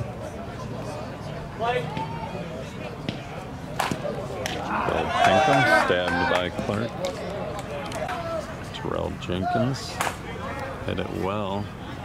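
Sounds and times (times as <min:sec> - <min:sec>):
softball bat cracking ball: 0:03.0 - 0:04.7.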